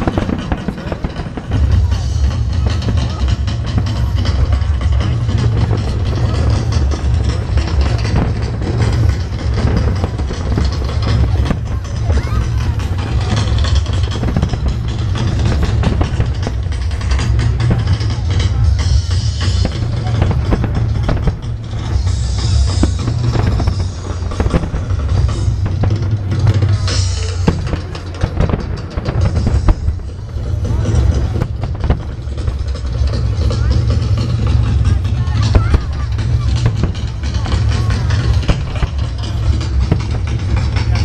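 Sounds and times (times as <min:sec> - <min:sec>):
crowd voices: 0:00.0 - 0:41.0
deep rumble: 0:00.0 - 0:41.0
firework shells bursting and crackling: 0:00.0 - 0:41.0
music: 0:00.0 - 0:41.0.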